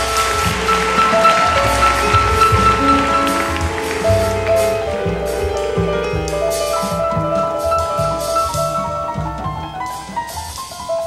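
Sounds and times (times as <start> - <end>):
upright bass: 0.0 - 9.7
cymbals: 0.0 - 11.0
grand piano notes: 0.0 - 11.0.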